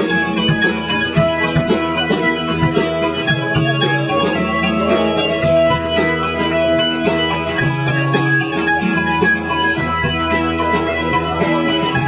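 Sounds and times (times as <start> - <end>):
live acoustic band playing: 0.0 - 12.0
strummed acoustic guitar: 0.0 - 12.0.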